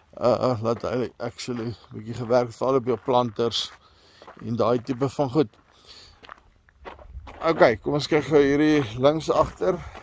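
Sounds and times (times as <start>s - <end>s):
man speaking: 0.0s - 3.8s, 4.4s - 5.6s, 7.4s - 10.0s
faint footsteps: 0.0s - 10.0s.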